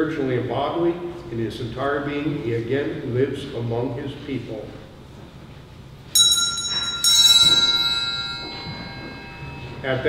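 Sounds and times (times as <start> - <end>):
altar bell ringing: 6.1 - 10.0.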